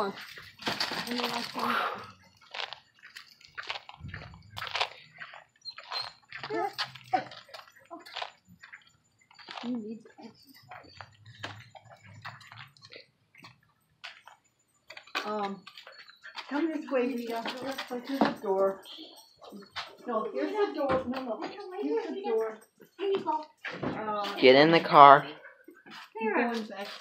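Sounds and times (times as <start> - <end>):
person speaking: 24.2 - 25.4.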